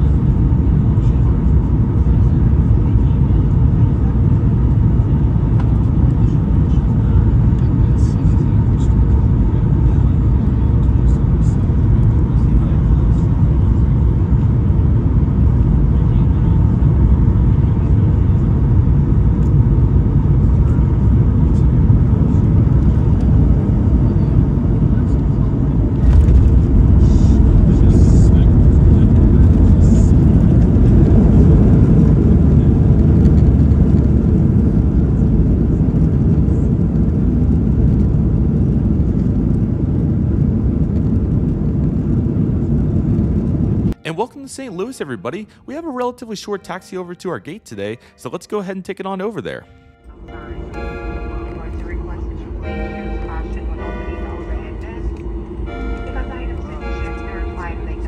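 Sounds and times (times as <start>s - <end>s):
airplane cabin rumble: 0.0s - 58.0s.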